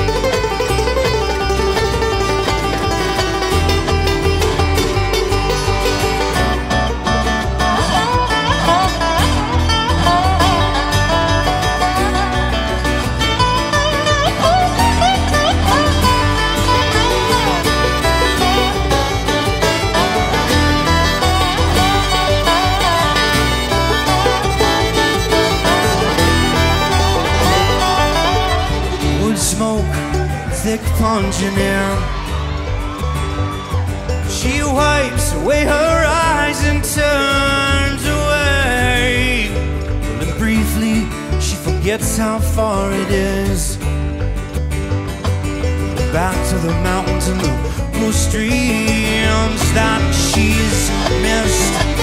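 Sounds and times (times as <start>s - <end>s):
guitar: 0.0s - 52.0s
low bass notes: 0.0s - 52.0s
picked banjo: 0.0s - 52.0s
sliding lead notes: 0.0s - 52.0s
string band playing: 0.0s - 52.0s.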